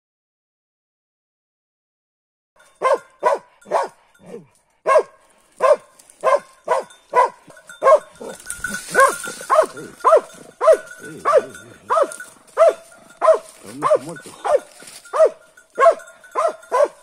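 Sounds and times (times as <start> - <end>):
dog barking: 2.7 - 17.0.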